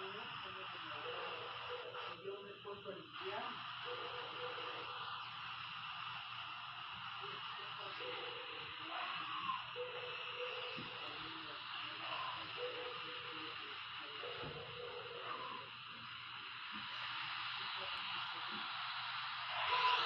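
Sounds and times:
steady hiss: 0.0s - 20.0s.

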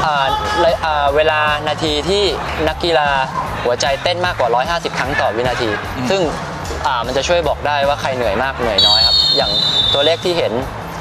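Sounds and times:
thin high tone: 8.8s - 10.3s.

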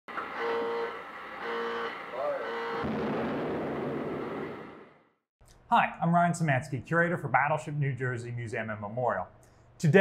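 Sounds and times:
horn-like tone: 0.3s - 2.9s.

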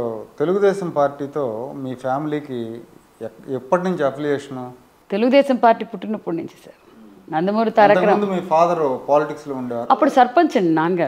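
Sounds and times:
woman speaking: 5.1s - 8.4s, 9.9s - 11.0s.

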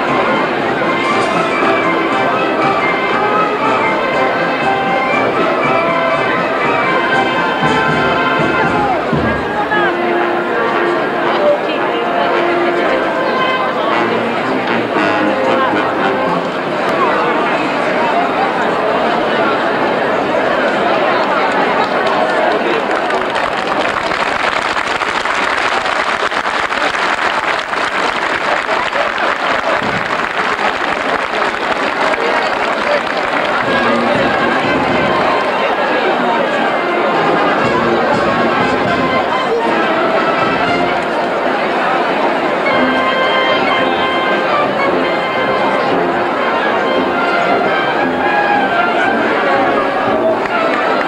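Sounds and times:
crowd talking: 0.0s - 51.0s.

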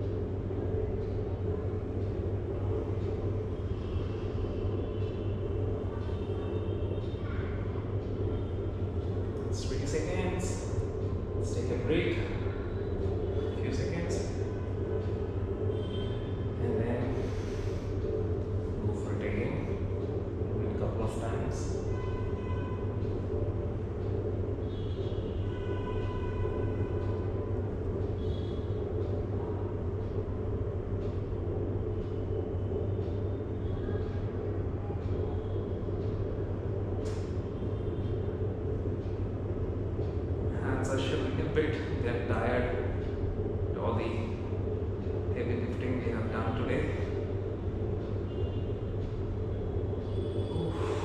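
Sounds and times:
room background hum: 0.0s - 51.0s.

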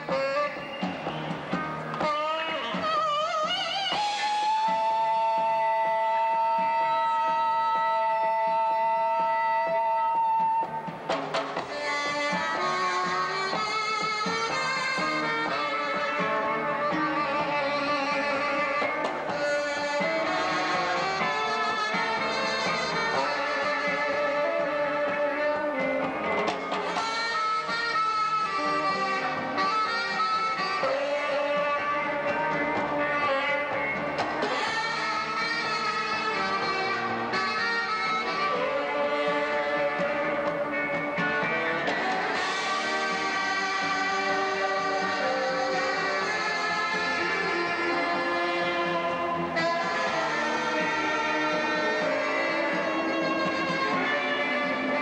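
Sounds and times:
saxophone playing: 0.0s - 1.0s, 1.9s - 10.9s, 11.6s - 55.0s
bass guitar: 0.0s - 55.0s
drums: 0.0s - 55.0s
electric guitar: 0.0s - 55.0s.

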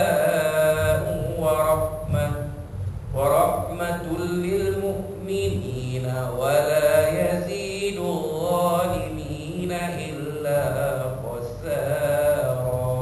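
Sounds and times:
person chanting melodic recitation: 0.0s - 13.0s.

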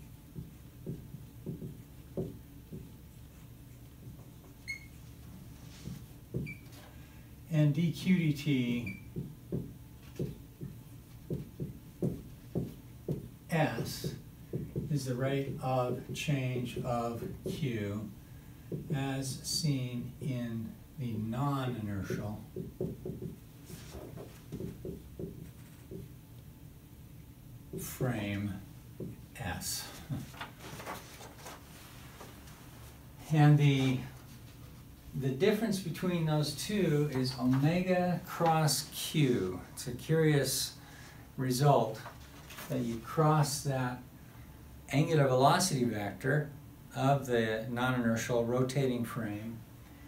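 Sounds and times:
marker writing on whiteboard: 0.3s - 6.8s, 8.7s - 17.7s, 18.7s - 19.4s, 22.1s - 26.2s, 27.7s - 28.0s
marker tip squeak: 4.6s - 5.0s, 6.4s - 6.7s.

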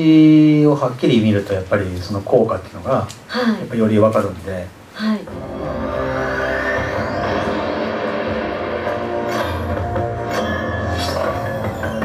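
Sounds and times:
rising synth sweep: 5.3s - 12.0s
sustained synth tones: 5.3s - 12.0s.

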